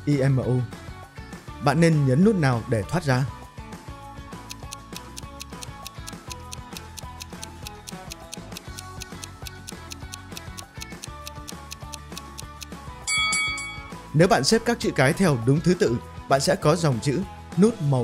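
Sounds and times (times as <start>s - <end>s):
soft background music: 0.0s - 18.0s
clock ticking: 4.4s - 12.7s
ringing chime: 13.1s - 14.1s.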